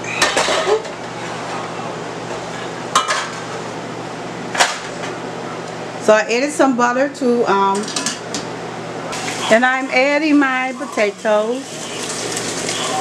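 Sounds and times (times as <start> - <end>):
water boiling in a pot: 9.2 - 13.0.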